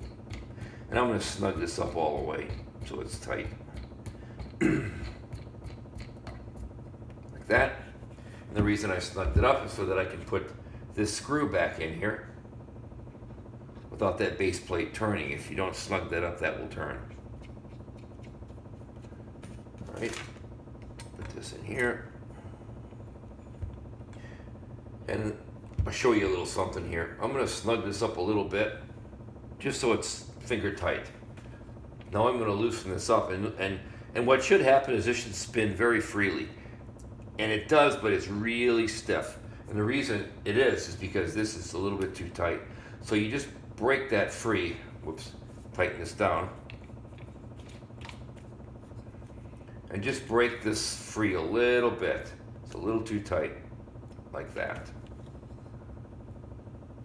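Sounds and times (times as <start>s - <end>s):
low room hum: 0.0s - 57.0s.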